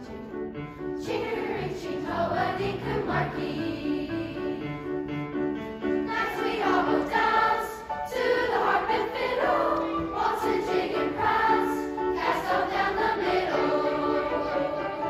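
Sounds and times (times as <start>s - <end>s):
piano accompaniment: 0.0s - 15.0s
children's choir singing: 0.9s - 5.1s, 5.9s - 15.0s.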